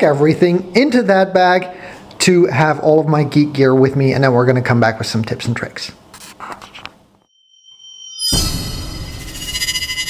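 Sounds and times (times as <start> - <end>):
high-pitched electronic tone: 7.4 - 10.0.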